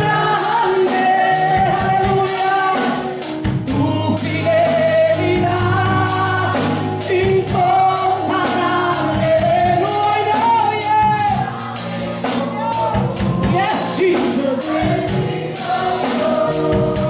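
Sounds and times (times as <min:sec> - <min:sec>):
band playing steady beat: 0:00.0 - 0:17.0
person singing through speakers: 0:00.0 - 0:17.0.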